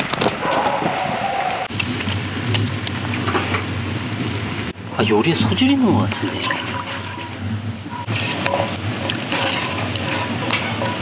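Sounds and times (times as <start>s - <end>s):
sauce sizzling in frying pan: 5.9s - 11.0s.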